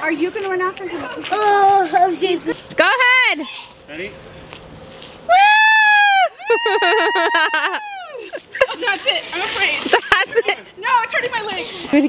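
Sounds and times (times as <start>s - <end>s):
person crying whoa: 5.3s - 8.3s
people laughing: 6.0s - 10.9s
group chatter: 7.8s - 12.0s.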